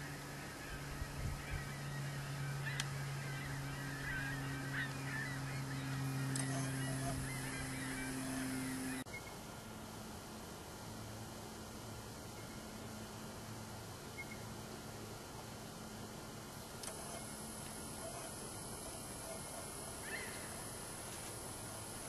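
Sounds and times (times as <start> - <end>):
steady low hum: 0.0 - 22.0
wild turkeys calling: 0.4 - 9.0, 18.0 - 20.7.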